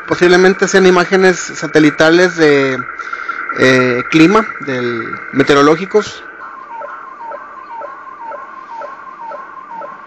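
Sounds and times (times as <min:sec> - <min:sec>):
warbling radio signal tone: 0:00.0 - 0:10.0.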